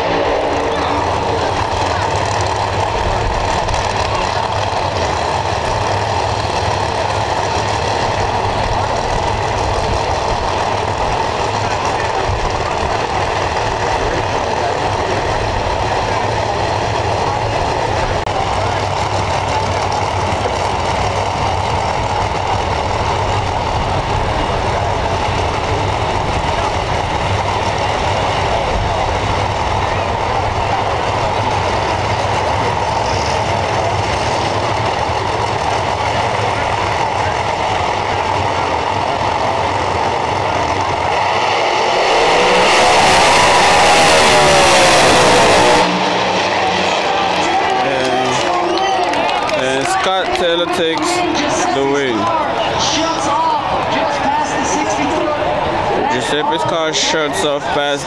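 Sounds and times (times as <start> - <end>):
drag race engines droning: 0.0 - 58.0.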